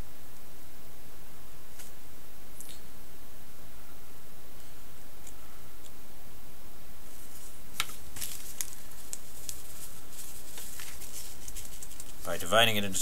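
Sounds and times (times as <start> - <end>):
steady background hiss: 0.0 - 13.0
grit scratching and clicking on paper: 7.2 - 13.0.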